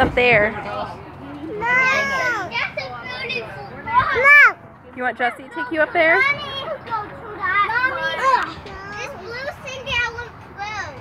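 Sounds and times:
young children chattering: 0:00.4 - 0:11.0.

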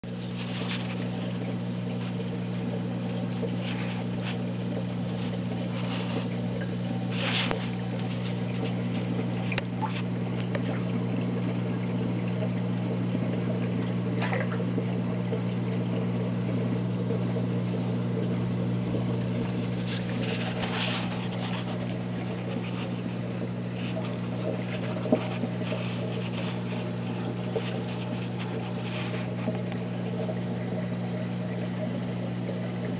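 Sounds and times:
aquarium pump humming: 0:00.0 - 0:32.9
faint trickling water: 0:00.1 - 0:32.9.

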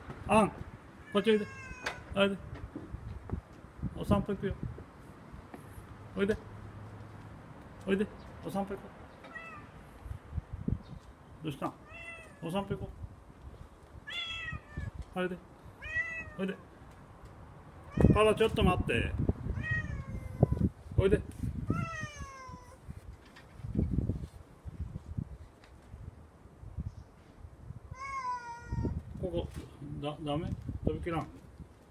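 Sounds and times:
kitten meowing: 0:01.0 - 0:02.0, 0:11.9 - 0:12.4, 0:14.1 - 0:14.9, 0:15.8 - 0:16.4, 0:19.6 - 0:20.6, 0:21.7 - 0:22.8, 0:28.0 - 0:29.0.

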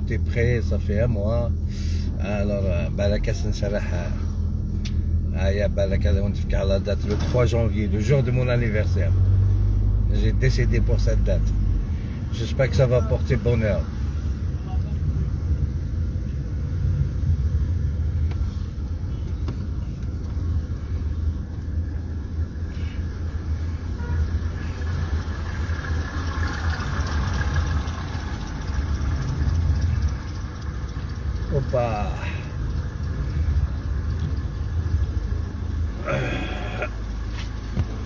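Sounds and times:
car engine and road noise: 0:00.0 - 0:38.0.

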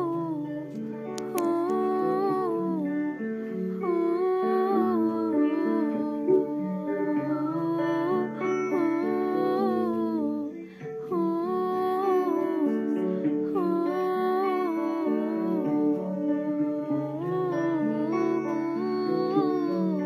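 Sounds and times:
woman singing gospel song: 0:00.0 - 0:03.1, 0:03.7 - 0:20.0
plucked guitar: 0:00.0 - 0:20.0.

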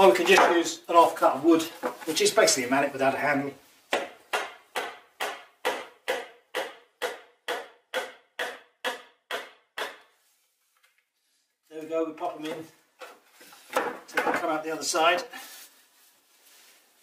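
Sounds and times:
wooden mallet knocking wood: 0:03.9 - 0:10.1.

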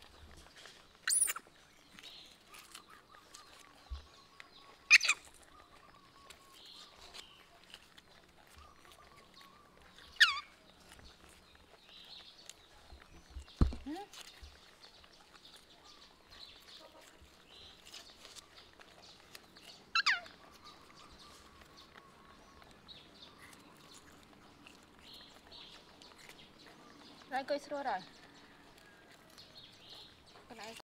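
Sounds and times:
high-pitched animal calls: 0:01.0 - 0:01.5, 0:04.7 - 0:07.1, 0:08.5 - 0:10.6, 0:19.9 - 0:22.3.

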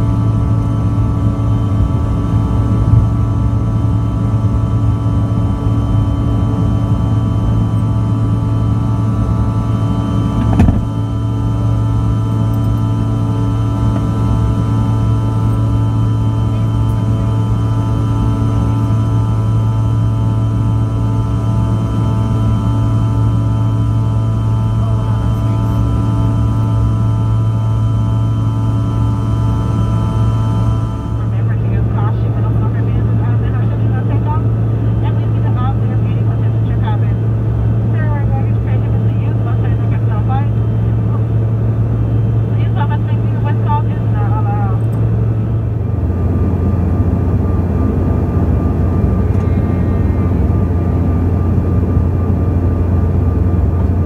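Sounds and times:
aircraft cabin drone: 0:00.0 - 0:54.0
whining engine tones: 0:00.0 - 0:54.0.

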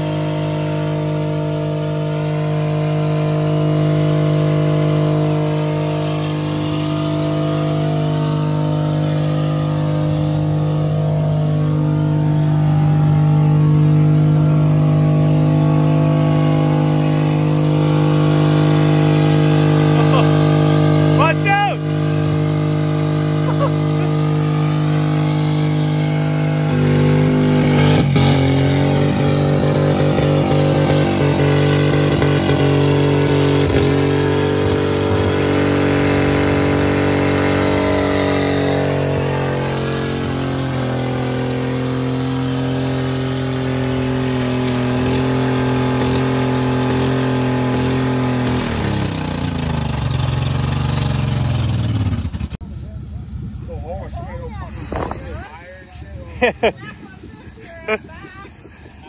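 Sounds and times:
car engine revving high: 0:00.0 - 0:52.6.

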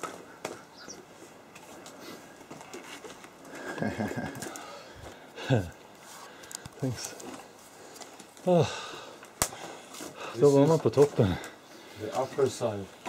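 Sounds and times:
clicks and scrapes of climbing: 0:00.0 - 0:08.5.

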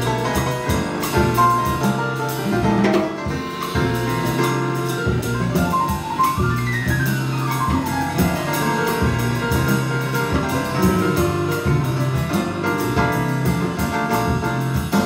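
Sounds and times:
drum kit played with sticks: 0:00.0 - 0:15.0
electric piano: 0:00.0 - 0:15.0
upright bass: 0:00.0 - 0:15.0.

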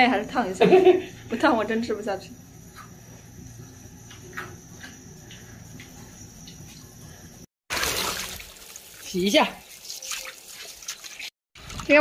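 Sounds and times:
hose water splashing into metal basin: 0:07.7 - 0:12.0.

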